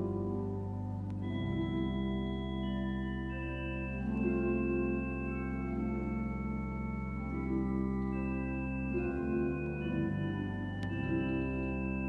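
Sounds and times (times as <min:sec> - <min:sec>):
organ playing a slow hymn: 0:00.0 - 0:12.0.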